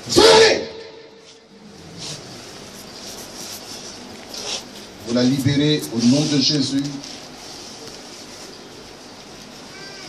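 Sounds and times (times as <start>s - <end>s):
murmur of crowded hall: 0.0s - 10.0s.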